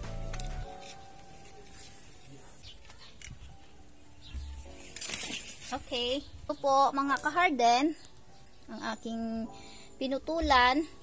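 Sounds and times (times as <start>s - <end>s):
faint background music: 0.0s - 11.0s
pruning shears click and thump: 0.2s - 1.0s.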